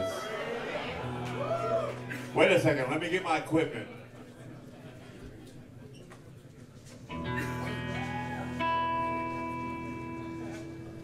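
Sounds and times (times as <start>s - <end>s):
electric guitar chord ringing: 7.2s - 11.0s.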